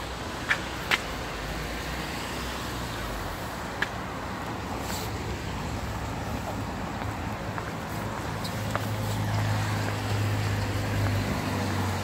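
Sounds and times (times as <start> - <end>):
road traffic on wet streets: 0.0 - 12.0.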